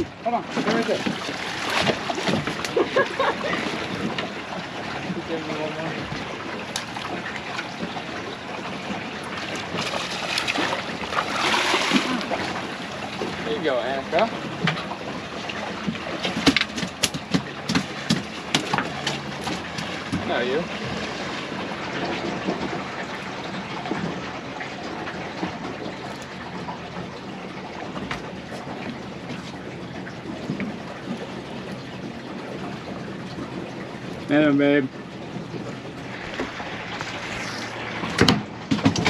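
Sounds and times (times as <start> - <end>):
water noise: 0.0 - 39.0
wind: 0.0 - 39.0
sharp clicks and knocks: 15.8 - 20.3, 38.1 - 39.0.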